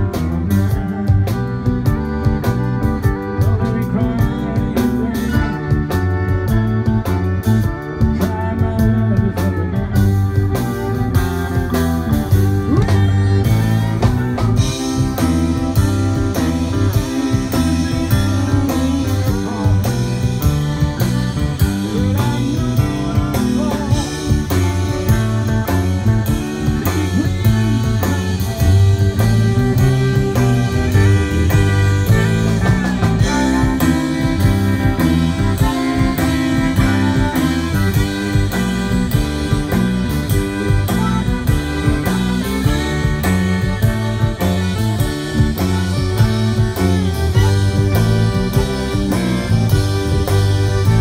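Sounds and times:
accordion: 0.0s - 51.0s
drum kit steady beat: 0.0s - 51.0s
electric bass: 0.0s - 51.0s
electric guitar: 0.0s - 51.0s
fiddle: 0.0s - 51.0s.

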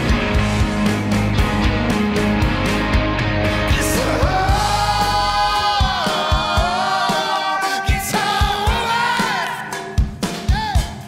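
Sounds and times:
drum hits: 0.0s - 11.0s
live band music: 0.0s - 11.0s
person singing long sliding notes: 3.7s - 9.8s.

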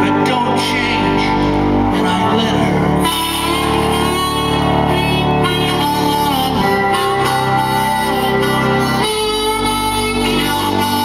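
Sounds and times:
man singing: 0.0s - 6.8s
sustained keyboard chords: 0.0s - 11.0s.

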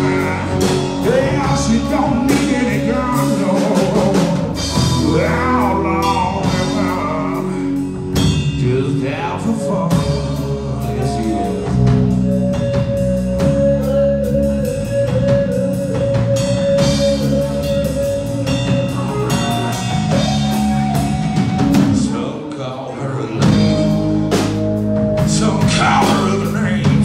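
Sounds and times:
live country rock band: 0.0s - 27.0s.

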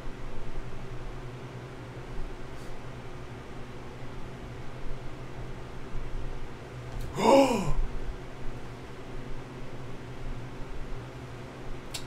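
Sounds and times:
man sighing: 7.1s - 7.9s.

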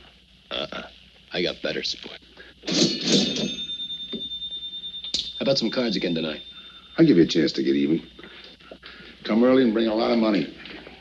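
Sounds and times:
cash register clatter: 2.7s - 3.8s
cash register bell ringing: 2.7s - 8.2s.

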